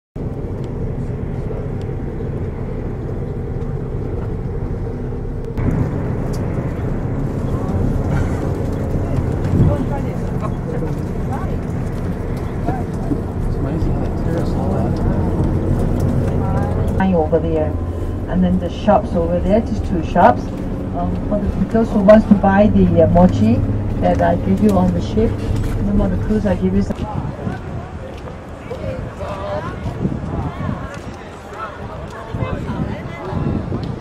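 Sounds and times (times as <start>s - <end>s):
bus engine and road rumble: 0.2s - 34.0s.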